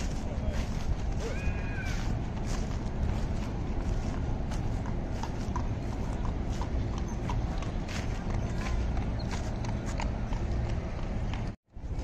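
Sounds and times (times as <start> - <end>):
horse hooves clip-clopping on pavement: 0.0 - 12.0.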